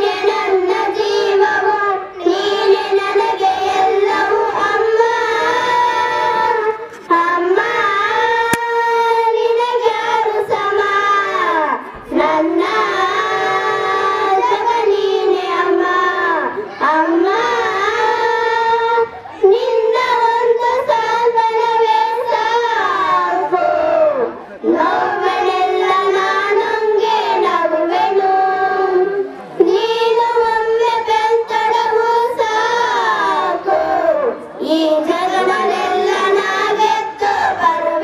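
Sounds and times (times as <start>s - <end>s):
children singing into microphones: 0.0s - 38.0s.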